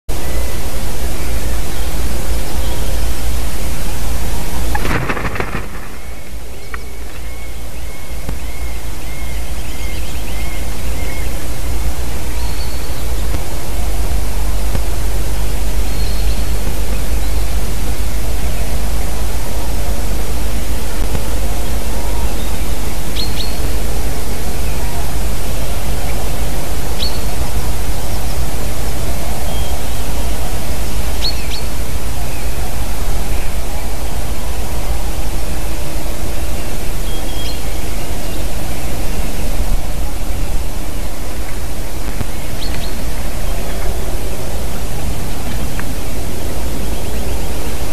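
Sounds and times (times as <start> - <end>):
small birds chirping: 0.2 - 13.4, 36.4 - 47.9
wind buffeting microphone: 0.2 - 47.9.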